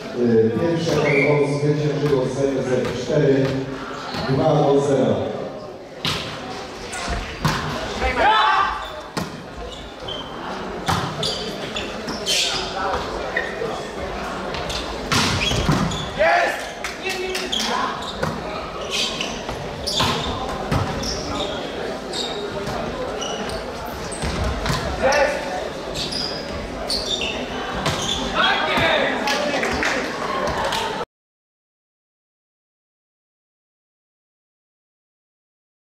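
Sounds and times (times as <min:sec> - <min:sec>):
volleyball hits: 0:14.5 - 0:16.0.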